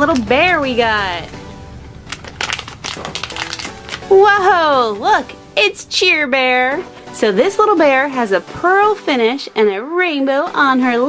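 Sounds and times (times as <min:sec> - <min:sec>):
background music: 0:00.0 - 0:11.0
plastic bag crinkling: 0:01.9 - 0:04.2.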